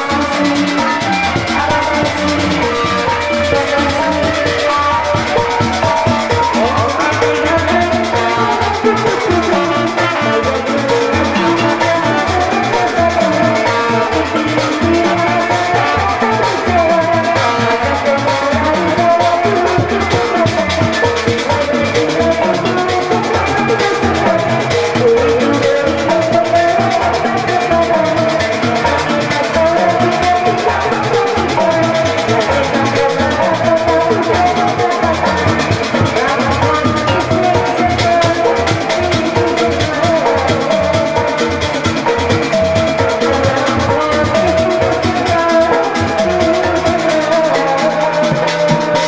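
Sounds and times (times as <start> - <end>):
melodic instrumental accompaniment: 0.0 - 49.0
steady drum beat: 0.0 - 49.0
woman singing into a microphone: 0.0 - 49.0.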